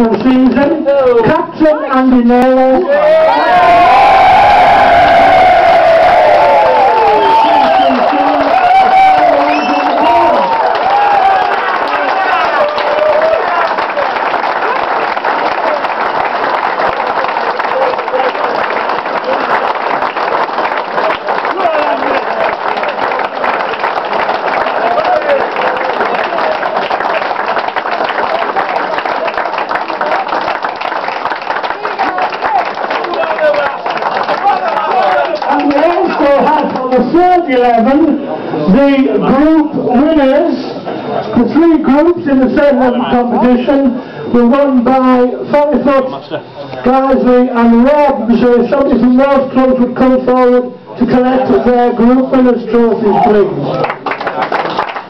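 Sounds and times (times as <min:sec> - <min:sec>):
crowd cheering and shouting: 0:02.6 - 0:14.8, 0:21.1 - 0:23.0, 0:24.5 - 0:27.1, 0:31.8 - 0:37.0
applause: 0:03.0 - 0:37.7, 0:53.1 - 0:55.0.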